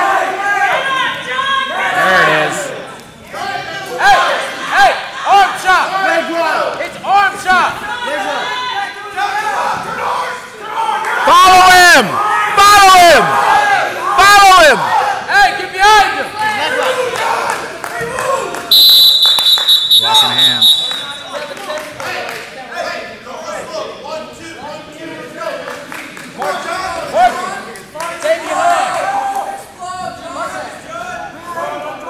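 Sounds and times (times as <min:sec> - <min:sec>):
people shouting: 0:19.9 - 0:21.4.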